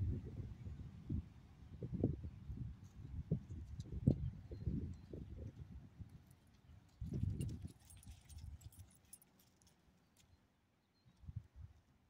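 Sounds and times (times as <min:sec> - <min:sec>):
dog tags and leash clips jingling: 0:07.0 - 0:10.2.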